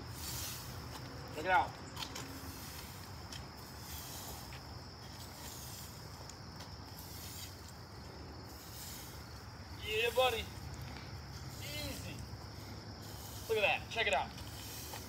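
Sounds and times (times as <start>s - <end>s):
branch sweeping asphalt: 0.0s - 15.0s.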